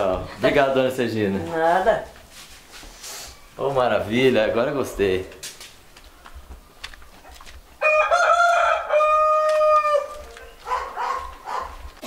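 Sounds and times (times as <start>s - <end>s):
rooster crowing: 7.8s - 11.7s.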